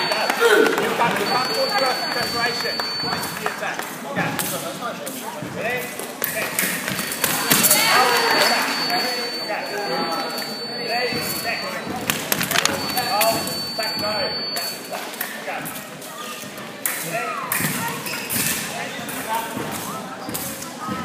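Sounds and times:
chatter of many voices: 0:00.0 - 0:21.0
thin high tone: 0:01.0 - 0:03.5, 0:06.6 - 0:15.2.

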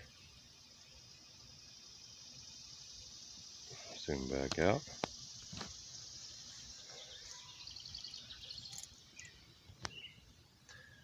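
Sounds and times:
high insect hiss: 0:00.0 - 0:11.0.

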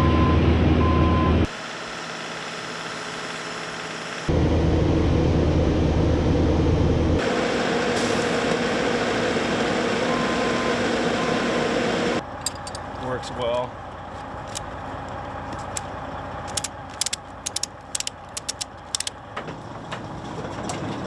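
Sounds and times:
reversing beeper: 0:00.0 - 0:01.5, 0:10.0 - 0:11.7
diesel engine running: 0:00.0 - 0:21.0.

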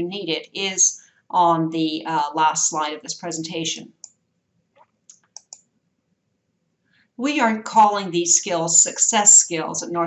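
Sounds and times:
computer mouse clicks: 0:05.1 - 0:05.6.

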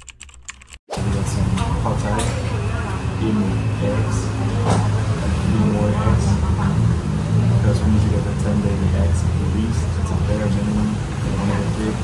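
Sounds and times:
indistinct voices: 0:01.0 - 0:12.0.

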